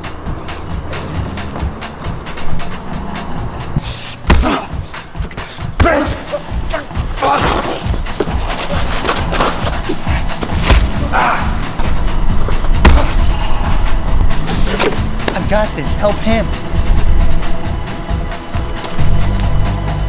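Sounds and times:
punches thudding: 4.2s - 6.2s, 10.3s - 11.3s, 12.5s - 13.5s
film score low drone: 6.2s - 20.0s.

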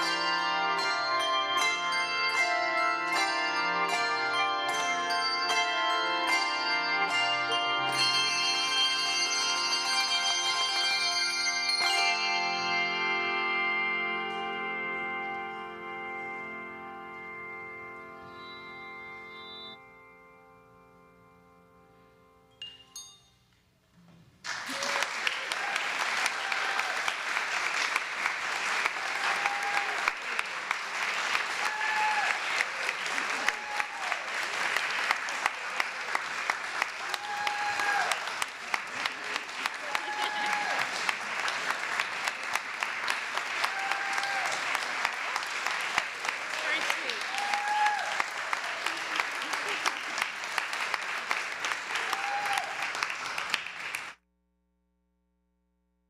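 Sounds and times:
congregation applauding: 24.4s - 54.2s.

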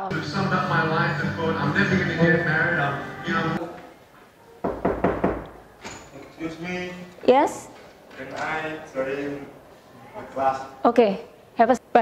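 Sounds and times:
knuckles knocking on door: 4.6s - 5.6s.

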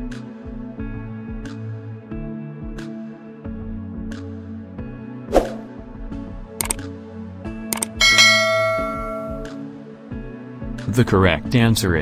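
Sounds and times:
background music: 0.0s - 12.0s
short clicks: 6.6s - 6.8s, 7.7s - 8.0s
bell-like chime: 8.0s - 9.6s.

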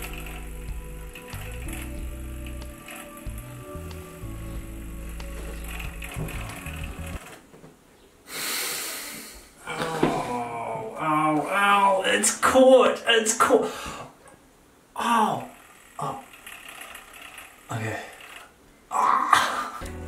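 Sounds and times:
background music: 0.0s - 7.2s, 19.8s - 20.0s
electric shaver buzzing: 0.0s - 7.2s.

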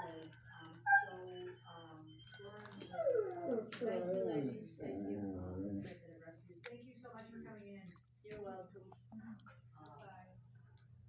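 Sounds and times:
dog whining and howling: 0.0s - 4.5s.

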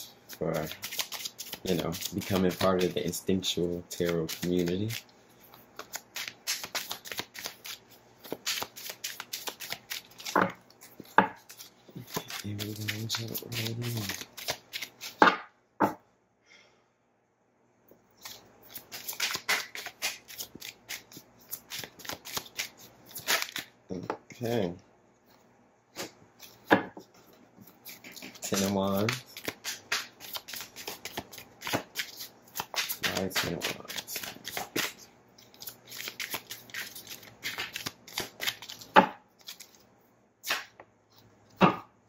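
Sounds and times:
cards shuffled by hand: 0.2s - 15.3s, 18.2s - 23.7s, 26.0s - 39.8s.

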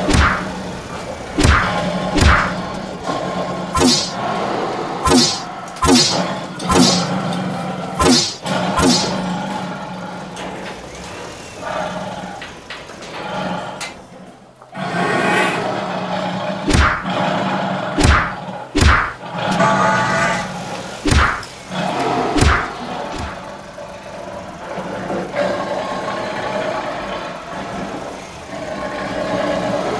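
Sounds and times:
cartoon punch swooshes and thuds: 0.0s - 0.5s, 1.4s - 2.6s, 3.8s - 4.2s, 5.0s - 7.1s, 8.0s - 9.2s, 16.7s - 17.1s, 18.0s - 19.2s, 21.1s - 21.5s, 22.4s - 23.4s.

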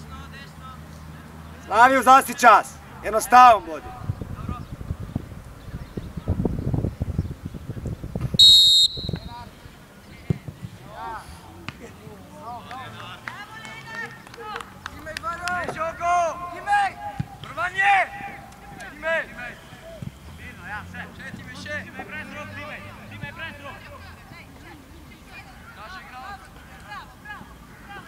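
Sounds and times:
referee's whistle: 8.4s - 9.4s.

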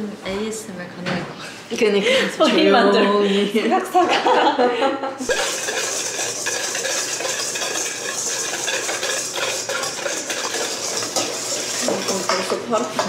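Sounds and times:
whisk scraping steel bowl: 5.2s - 13.0s.

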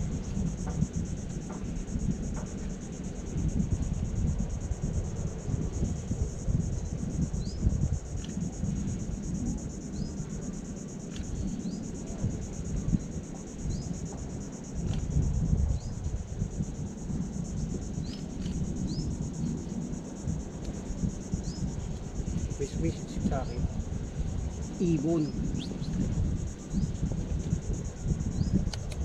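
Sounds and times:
insects trilling: 0.0s - 29.0s
low uneven rumble: 0.0s - 29.0s.

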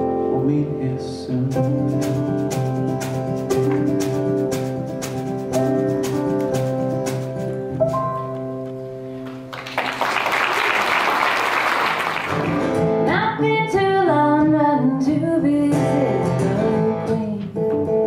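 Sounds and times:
held keyboard chord: 0.0s - 9.5s
acoustic guitar: 0.0s - 9.7s, 12.0s - 18.0s
woman singing: 13.0s - 17.9s.

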